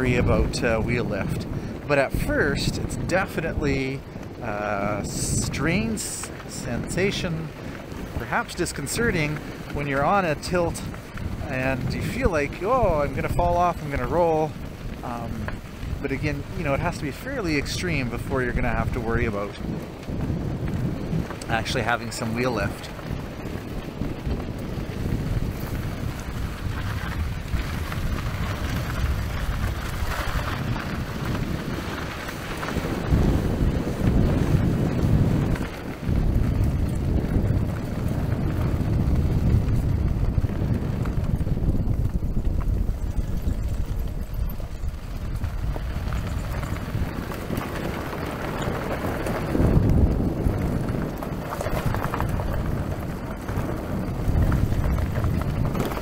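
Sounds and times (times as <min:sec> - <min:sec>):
fat tyres rolling over gravel: 0:00.0 - 0:56.0
wind buffeting microphone: 0:00.0 - 0:56.0.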